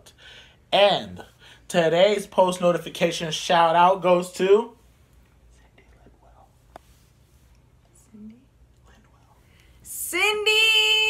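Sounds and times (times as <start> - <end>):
man whispering: 5.4 - 6.9, 7.9 - 9.5.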